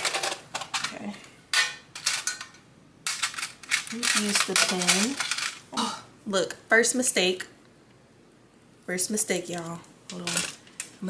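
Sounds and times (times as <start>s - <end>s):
pens clattering in a tin: 0.0s - 1.0s, 3.1s - 5.6s, 9.5s - 11.0s.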